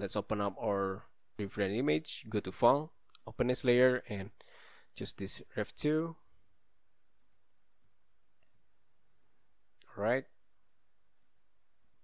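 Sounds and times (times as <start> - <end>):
low steady hiss: 0.0 - 12.0
computer mouse clicks: 7.2 - 8.6.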